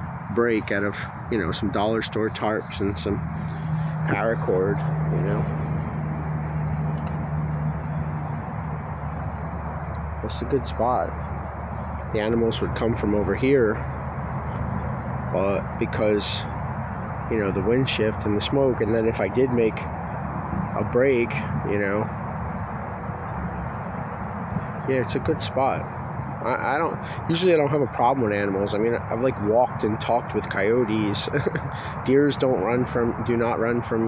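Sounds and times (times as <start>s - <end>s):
faint insect buzz: 0.0s - 18.6s
highway traffic drone: 0.0s - 34.0s.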